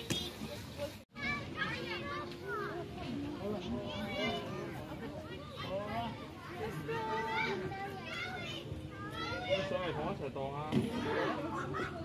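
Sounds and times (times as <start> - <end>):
children talking and calling: 0.0 - 12.0.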